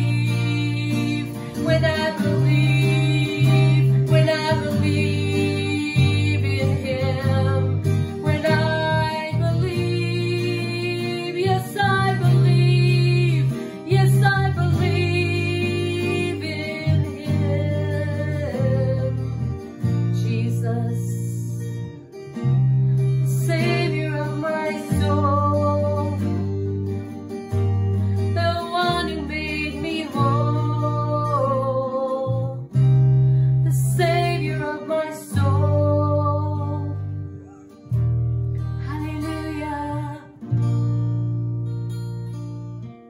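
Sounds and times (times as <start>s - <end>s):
woman singing: 0.0s - 21.9s, 23.0s - 26.9s, 28.2s - 40.6s
acoustic guitar chords: 0.0s - 43.0s.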